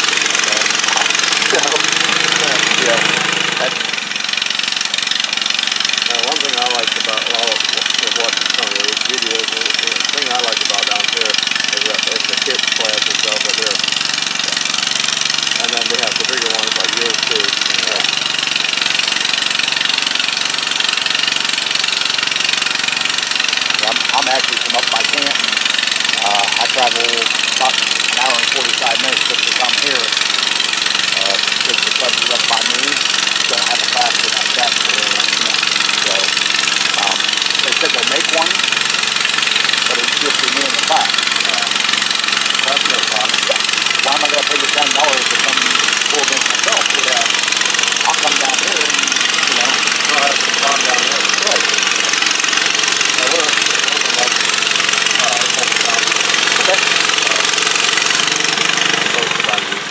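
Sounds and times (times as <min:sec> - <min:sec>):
garden tractor engines idling: 0:00.0 - 0:59.9
people talking: 0:00.4 - 0:03.9, 0:06.1 - 0:13.8, 0:15.6 - 0:18.1, 0:23.8 - 0:25.4, 0:26.2 - 0:30.2, 0:31.2 - 0:36.3, 0:37.0 - 0:38.6, 0:39.9 - 0:41.8, 0:42.6 - 0:47.3, 0:48.0 - 0:51.7, 0:53.2 - 0:54.4, 0:55.2 - 0:57.5, 0:59.0 - 0:59.8.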